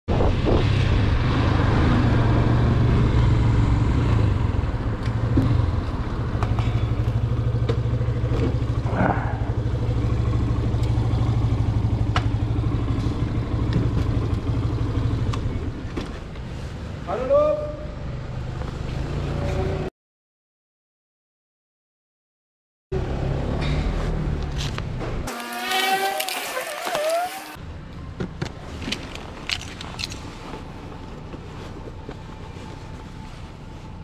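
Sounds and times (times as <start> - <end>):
motorcycle engine idling: 6.5 - 15.9.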